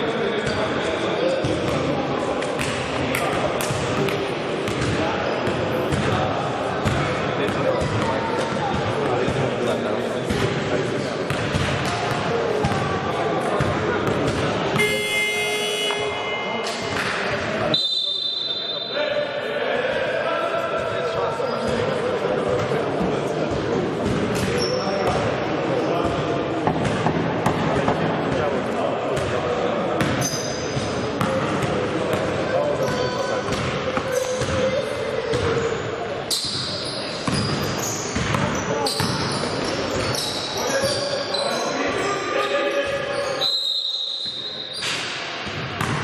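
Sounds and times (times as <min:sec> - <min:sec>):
voices in hall: 0:00.0 - 0:46.0.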